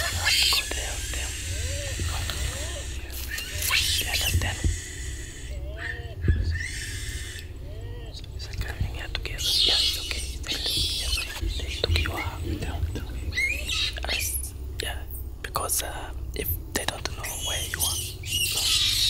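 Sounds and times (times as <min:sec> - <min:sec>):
hushed whispering voices: 0:00.0 - 0:04.9, 0:07.9 - 0:19.0
rising and falling calls: 0:00.0 - 0:08.2, 0:09.4 - 0:14.6
steady high hiss: 0:00.0 - 0:19.0.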